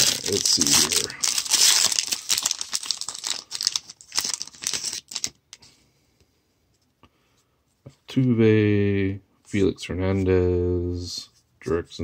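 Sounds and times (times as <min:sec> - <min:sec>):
foil wrapper crinkling: 0:00.0 - 0:05.4.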